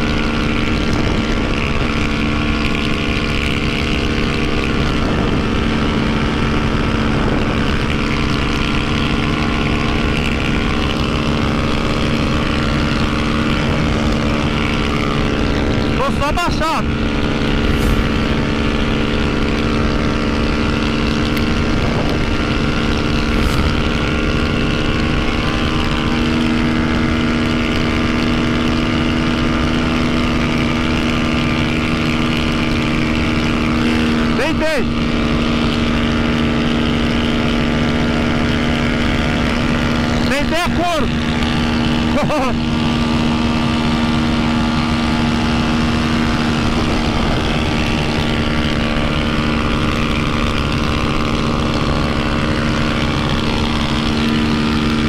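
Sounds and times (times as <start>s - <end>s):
wind rush: 0.0s - 16.1s, 16.8s - 27.3s
motorcycle engine drone: 0.0s - 55.0s.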